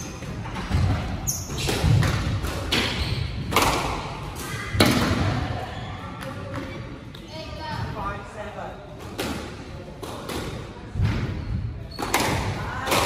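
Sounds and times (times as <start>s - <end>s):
shoe squeak: 1.2s - 1.7s, 2.8s - 3.5s.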